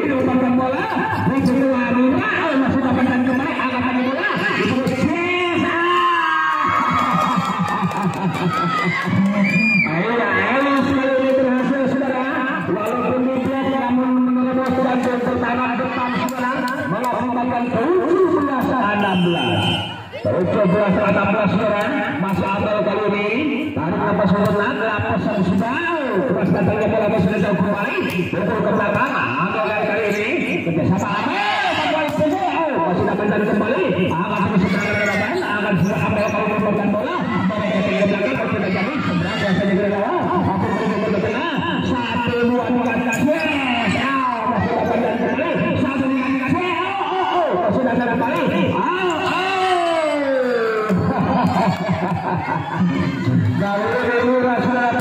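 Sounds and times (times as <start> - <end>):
crowd shouting and chattering: 0.0 - 55.0.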